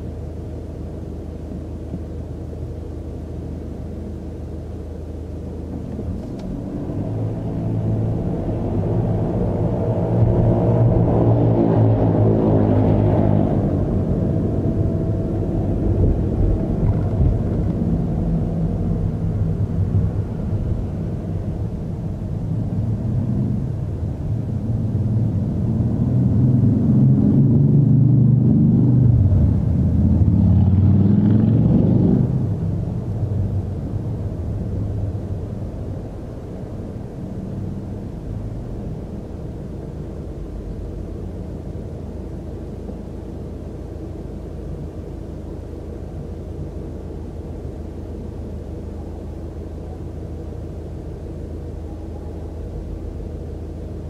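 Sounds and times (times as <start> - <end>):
car engine: 0.0 - 54.0
road noise: 0.0 - 54.0.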